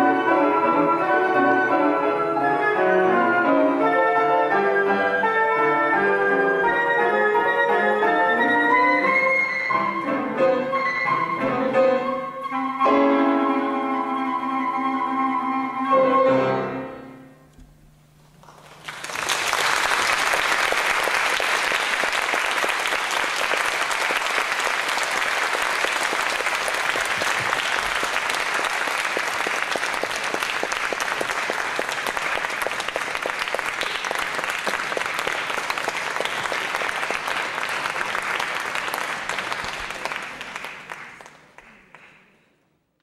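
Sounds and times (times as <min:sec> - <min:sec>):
audience applauding: 0:18.4 - 0:42.4.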